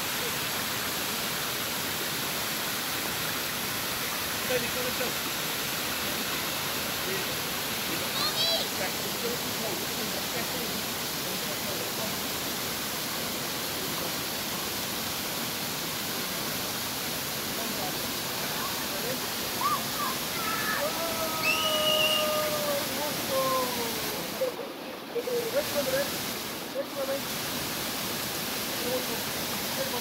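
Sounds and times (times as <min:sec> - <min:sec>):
waterfall rushing over rocks: 0:00.0 - 0:30.0
voice calling long tones: 0:19.6 - 0:23.0.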